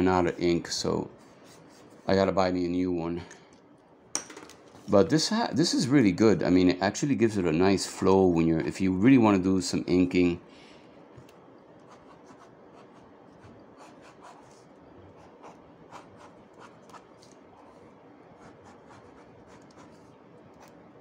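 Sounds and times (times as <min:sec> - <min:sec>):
ink pen drawing on paper: 0:11.9 - 0:20.7.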